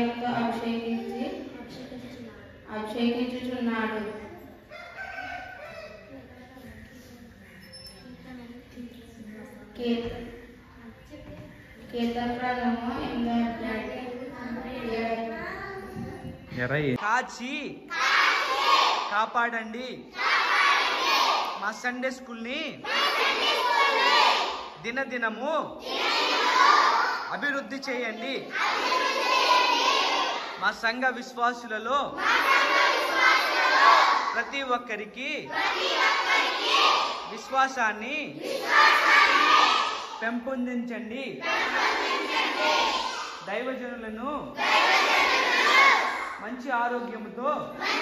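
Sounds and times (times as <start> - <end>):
children praying aloud together: 0.0 - 2.6, 4.0 - 6.7, 12.8 - 16.4, 17.8 - 19.4, 20.0 - 24.8, 25.6 - 34.7, 35.4 - 40.4, 41.3 - 43.7, 44.4 - 48.0.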